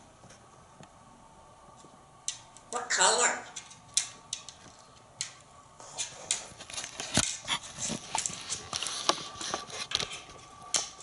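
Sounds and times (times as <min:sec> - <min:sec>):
parrot clicking and tapping: 0:03.5 - 0:05.4.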